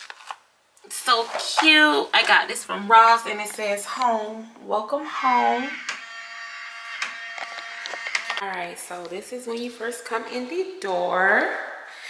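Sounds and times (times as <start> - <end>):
steady high whine: 5.1 - 8.5.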